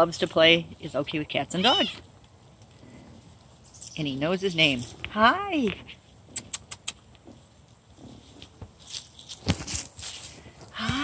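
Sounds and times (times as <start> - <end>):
kitten rustling in grass and leaves: 0.1 - 6.4, 7.0 - 10.8
kitten meowing: 1.6 - 2.0.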